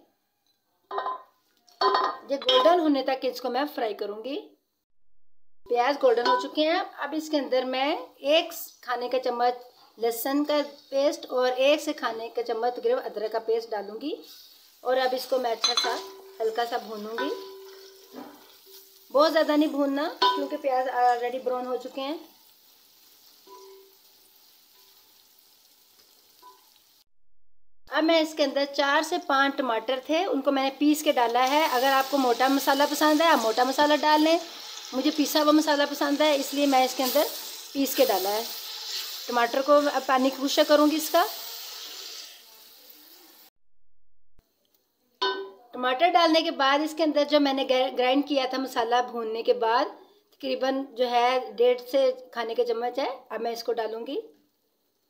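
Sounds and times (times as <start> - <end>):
plate clinking against steel pot: 0.9 - 2.8, 15.6 - 16.3
onions sizzling in oil: 5.8 - 27.1, 28.2 - 43.5
spatula stirring in pot: 36.7 - 39.9.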